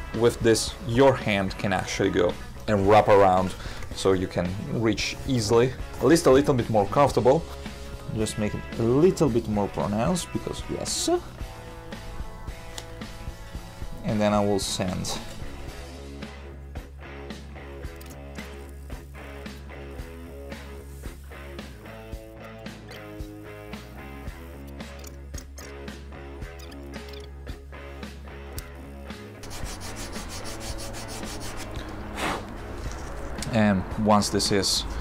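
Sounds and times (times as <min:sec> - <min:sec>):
background music: 0:00.0 - 0:35.0
sandpaper rubbing wood: 0:29.4 - 0:33.2.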